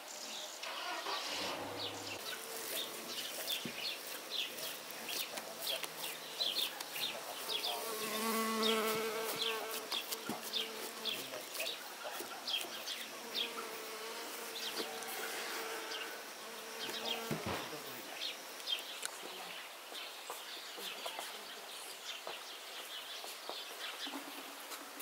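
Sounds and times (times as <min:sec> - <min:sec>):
small birds chirping: 0:00.0 - 0:24.8
flying insect buzzing: 0:00.9 - 0:11.8, 0:12.5 - 0:18.4.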